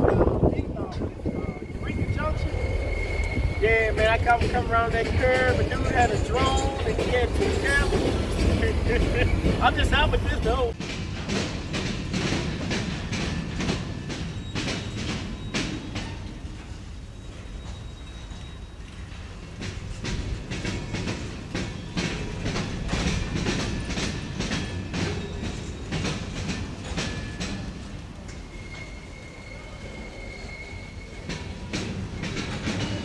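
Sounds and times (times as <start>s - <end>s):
train wheels clacking over crossings: 0.0s - 33.0s.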